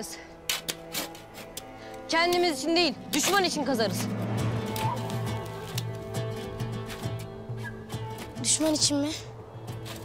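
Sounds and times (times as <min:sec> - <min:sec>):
background music: 0:00.0 - 0:10.0
hand tool striking soil: 0:00.5 - 0:06.0.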